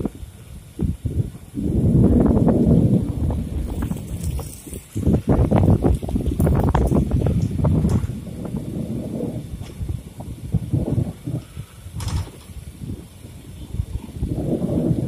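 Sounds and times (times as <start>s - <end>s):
train running rumble: 0.0s - 15.0s
wind buffeting microphone: 0.0s - 15.0s.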